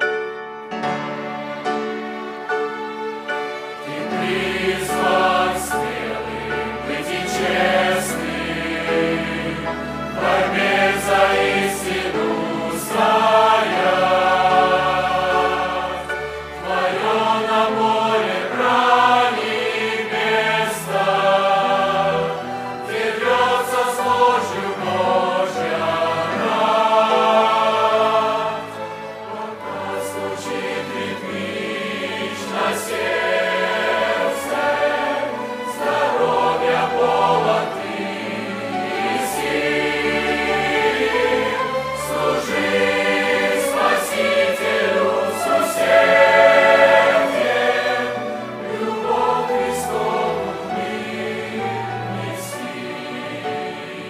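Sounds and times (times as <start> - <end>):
string orchestra: 0.0 - 54.0
choir singing a hymn: 0.8 - 54.0.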